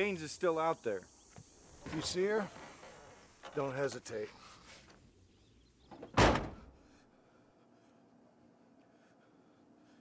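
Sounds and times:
vehicle door slamming: 0:06.0 - 0:06.7.

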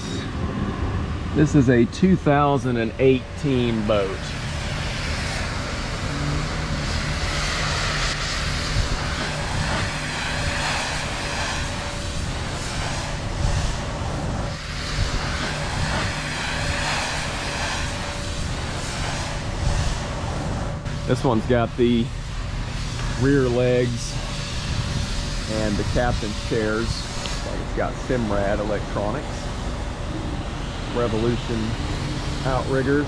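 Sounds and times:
engine rumble: 0:00.0 - 0:33.0
broad hiss: 0:05.0 - 0:13.8, 0:14.5 - 0:20.1.

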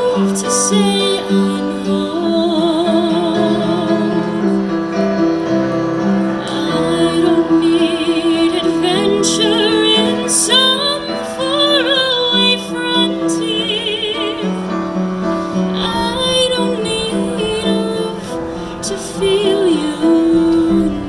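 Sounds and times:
woman singing through speakers: 0:00.0 - 0:04.6, 0:06.4 - 0:14.8, 0:15.6 - 0:21.0
piano accompaniment: 0:00.0 - 0:21.0.

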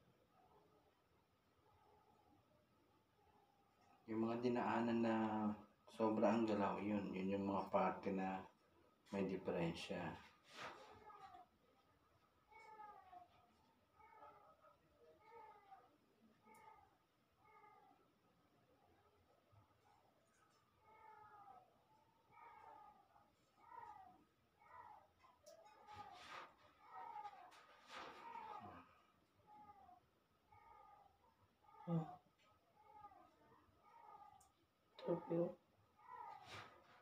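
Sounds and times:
cat meowing faintly: 0:12.5 - 0:13.4, 0:23.6 - 0:28.9, 0:31.7 - 0:32.2, 0:32.8 - 0:36.8.

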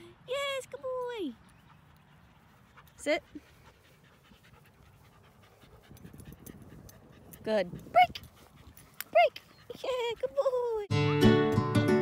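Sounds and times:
dog panting: 0:01.5 - 0:10.8.

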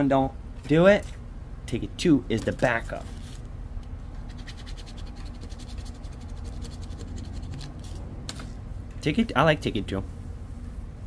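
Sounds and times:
coin scratching a ticket: 0:04.3 - 0:07.7.

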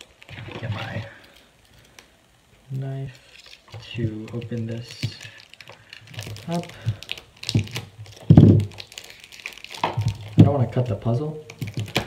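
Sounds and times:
plastic crinkling: 0:00.0 - 0:12.0
knife scraping plastic wrap: 0:03.2 - 0:12.0.

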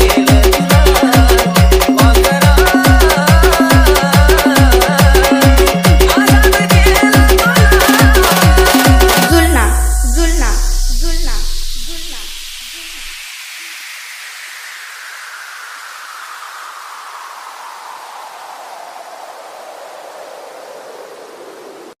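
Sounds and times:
dance beat and bass: 0:00.0 - 0:13.6
white-noise sweep falling in pitch: 0:07.7 - 0:22.0.

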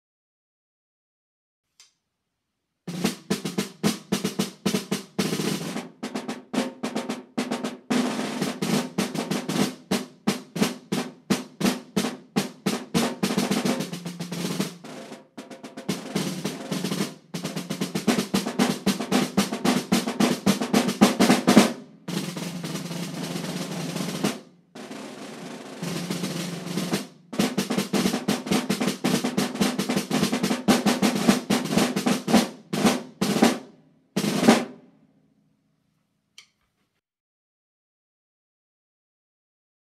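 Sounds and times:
snare drums played with sticks: 0:02.9 - 0:34.8.

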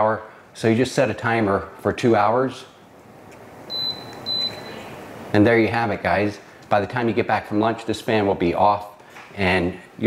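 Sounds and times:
fan airflow hiss: 0:00.0 - 0:10.0
high-pitched control panel beeps: 0:03.7 - 0:04.9.

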